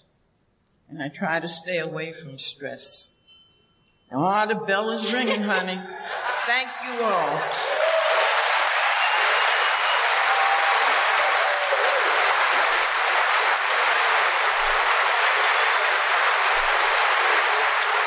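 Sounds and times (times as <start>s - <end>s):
audience applauding: 5.8s - 18.0s.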